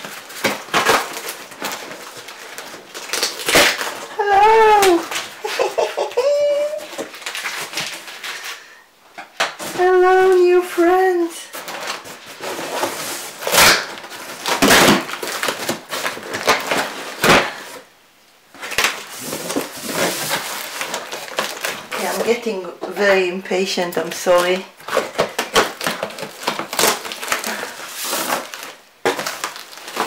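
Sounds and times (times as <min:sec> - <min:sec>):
cardboard tearing: 0:00.0 - 0:08.6, 0:09.4 - 0:17.8, 0:18.5 - 0:22.4, 0:24.2 - 0:30.0
cardboard scraping and rustling: 0:11.4 - 0:17.8, 0:18.5 - 0:23.0, 0:24.2 - 0:30.0.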